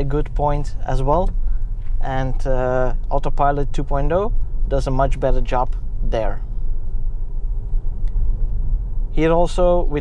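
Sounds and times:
tyres rumbling on asphalt: 0.0s - 10.0s.

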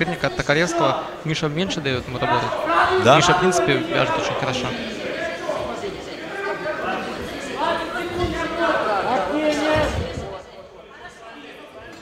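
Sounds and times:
background noise: 0.0s - 12.0s
raised voices: 0.2s - 11.2s.

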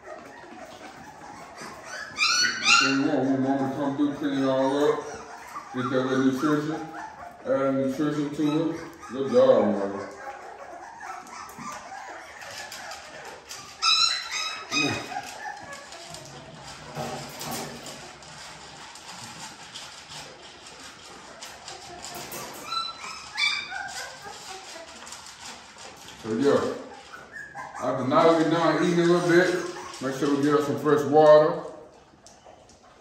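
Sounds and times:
puppies whining and yelping: 0.0s - 33.0s.

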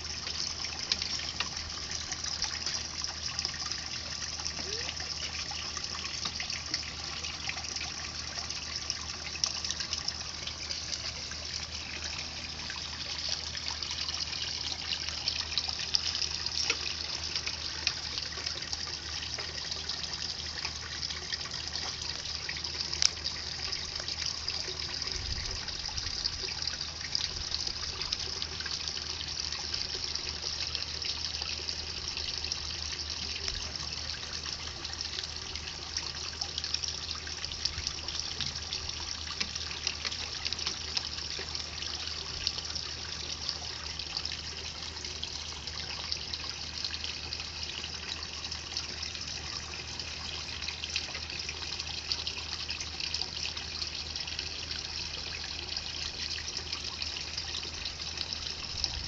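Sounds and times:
fountain water splashing into pond: 0.0s - 59.0s.

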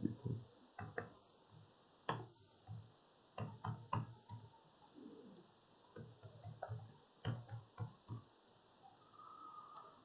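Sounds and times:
faint keyboard typing: 5.9s - 8.3s.

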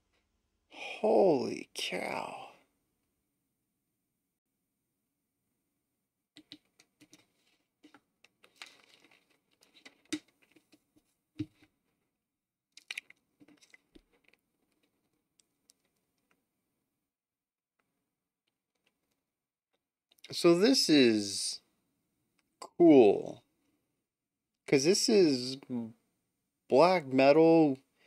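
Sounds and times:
faint clicks and rustles: 6.4s - 12.0s.

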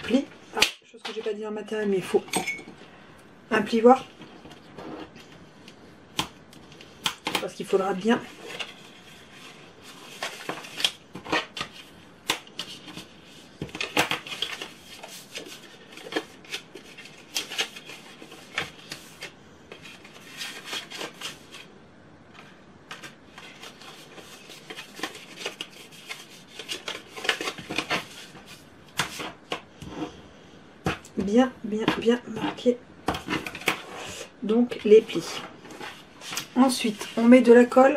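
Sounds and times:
paper rustling and scraping: 4.0s - 5.5s, 8.0s - 21.7s, 22.4s - 30.2s, 32.0s - 37.8s.

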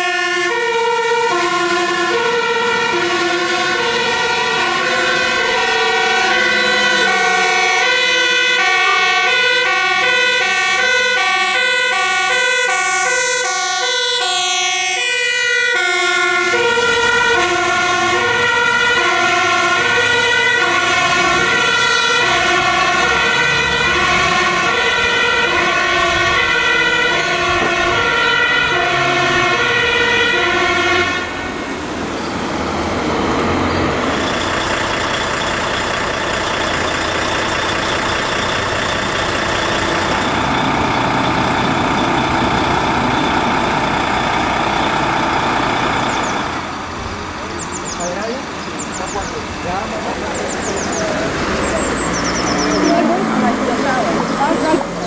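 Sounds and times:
fire truck two-tone siren: 0.0s - 55.0s.

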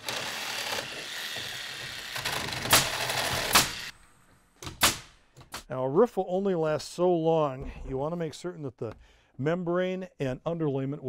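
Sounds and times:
sharp strikes on wood: 2.6s - 3.9s, 4.6s - 5.7s.

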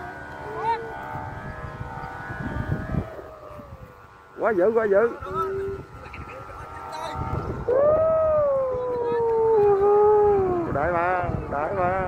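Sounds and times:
kite flutes in wind: 0.0s - 4.1s, 6.8s - 12.0s.

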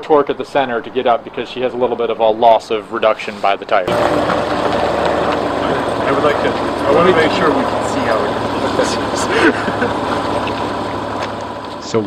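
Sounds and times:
faint voices: 2.6s - 10.8s
car engine idling: 3.7s - 12.0s.

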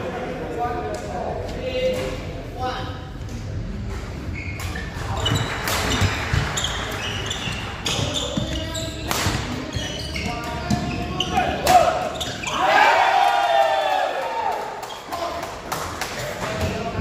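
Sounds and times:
voices in a hall: 0.0s - 17.0s.

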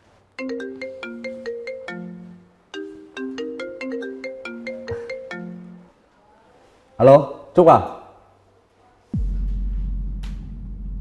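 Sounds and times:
marimba phone ringtone: 0.4s - 6.0s.

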